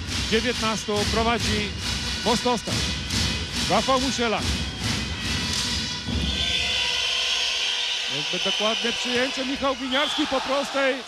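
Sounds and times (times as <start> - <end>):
crowd whistling: 0.3 - 11.0
crowd cheering: 4.6 - 11.0.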